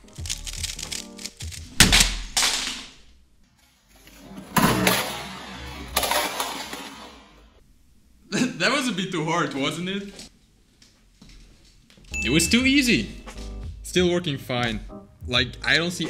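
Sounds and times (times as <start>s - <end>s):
background music: 0.0s - 2.2s, 12.1s - 16.0s.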